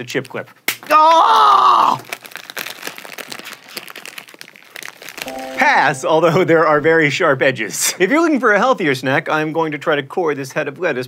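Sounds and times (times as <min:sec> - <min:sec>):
chip bag crinkling: 0:01.8 - 0:05.9.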